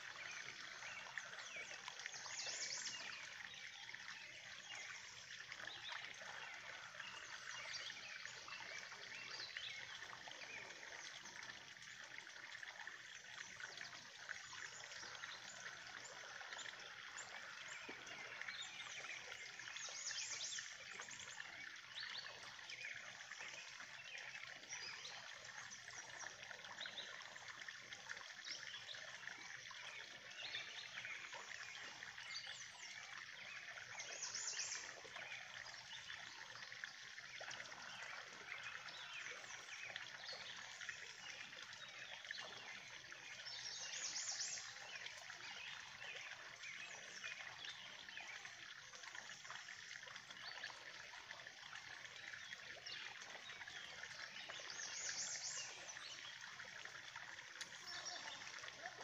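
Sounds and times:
water trickling into pond: 0:00.0 - 0:59.0.

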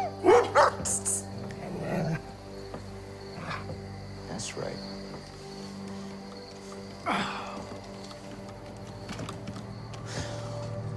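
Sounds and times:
dog barking: 0:00.1 - 0:01.0.

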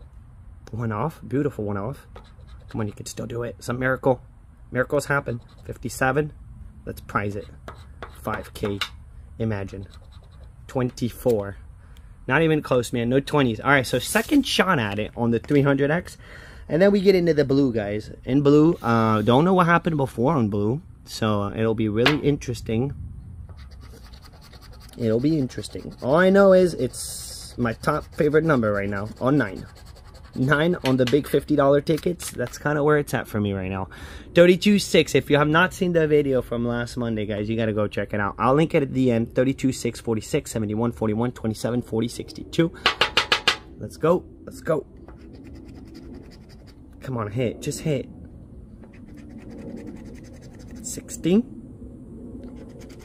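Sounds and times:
chip scratching lottery ticket: 0:02.1 - 0:03.1, 0:05.2 - 0:05.9, 0:09.7 - 0:10.6, 0:23.5 - 0:31.3, 0:45.2 - 0:46.8, 0:48.9 - 0:50.9, 0:52.6 - 0:53.0.

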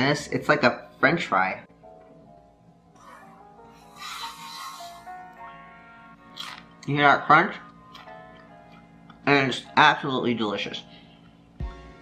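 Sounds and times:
quiet background music: 0:00.0 - 0:12.0
dried fish crunching as chewed: 0:06.3 - 0:06.8.

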